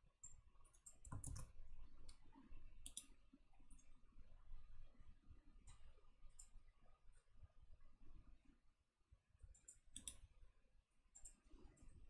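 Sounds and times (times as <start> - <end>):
computer mouse clicks: 0.2 - 2.2, 2.8 - 3.2, 6.4 - 6.6, 9.5 - 10.2, 11.1 - 11.4.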